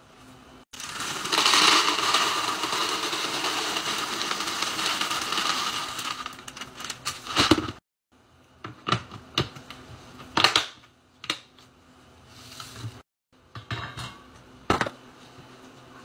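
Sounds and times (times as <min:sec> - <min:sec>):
cereal pouring into plastic container: 0:00.8 - 0:06.5.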